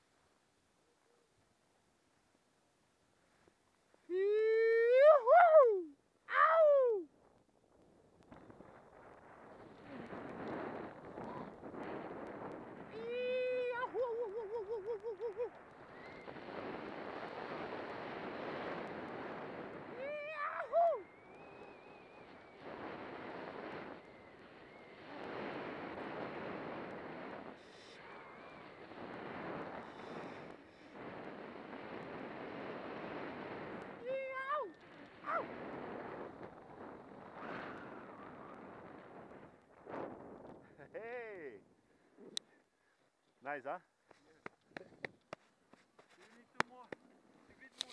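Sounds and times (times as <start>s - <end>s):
person whooping: 4.1s - 7.1s, 12.9s - 15.6s, 20.0s - 21.1s
wind on microphone: 8.3s - 40.9s
snowboard sliding over snow: 8.5s - 12.9s, 16.0s - 20.1s, 21.9s - 34.0s, 34.9s - 40.5s.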